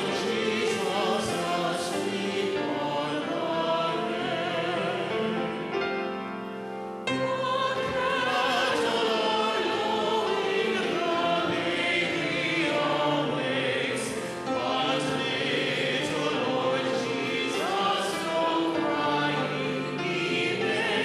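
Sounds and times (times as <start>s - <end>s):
choir and congregation singing hymn: 0.0s - 21.0s.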